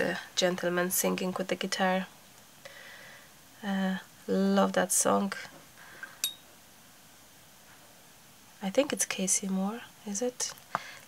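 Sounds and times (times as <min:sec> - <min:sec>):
light clink on glass: 0:06.2 - 0:06.4.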